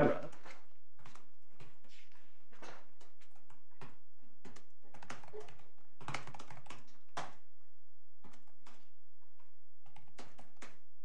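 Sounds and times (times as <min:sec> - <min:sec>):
computer keyboard typing: 0:03.0 - 0:07.4, 0:08.2 - 0:08.8, 0:09.8 - 0:10.8.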